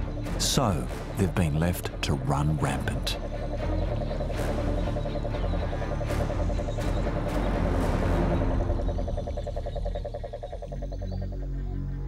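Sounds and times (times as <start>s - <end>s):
toad calling trill: 0.0s - 12.0s.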